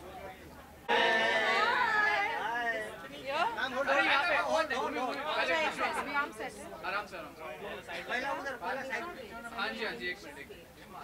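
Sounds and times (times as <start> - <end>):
crowd of people chattering: 0.0 - 11.0.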